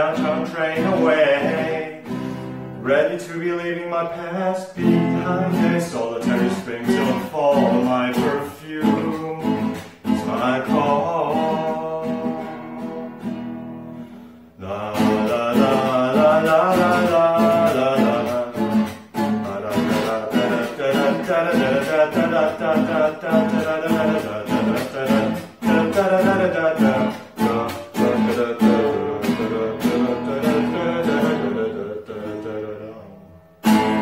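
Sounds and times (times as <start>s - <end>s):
man singing: 0.0s - 13.4s, 14.6s - 34.0s
strummed nylon-string guitar: 0.0s - 34.0s.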